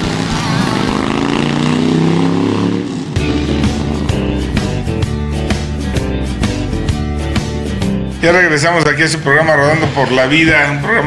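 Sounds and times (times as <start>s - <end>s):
motorcycle engine revving: 0.0s - 6.2s
guitar music: 0.0s - 11.0s.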